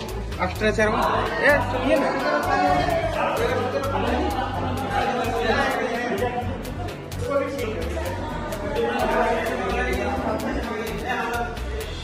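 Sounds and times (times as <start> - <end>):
background music: 0.0 - 12.0
indistinct chatter of voices: 0.0 - 12.0.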